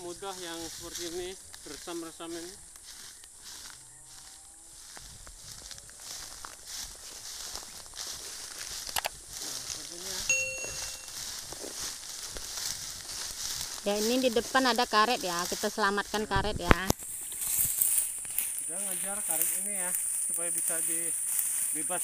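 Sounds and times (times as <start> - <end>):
fern fronds rustling underfoot: 0.0 - 22.0
short electronic chime: 10.3 - 11.2.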